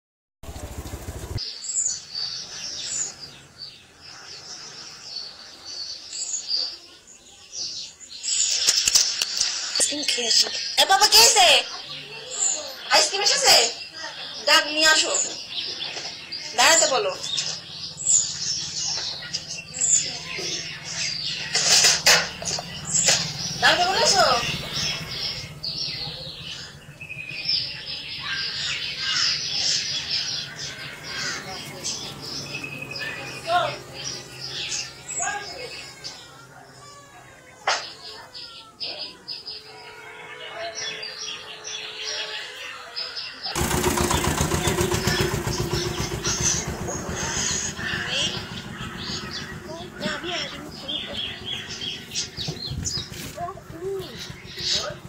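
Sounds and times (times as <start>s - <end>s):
small birds chirping: 0.4s - 55.0s.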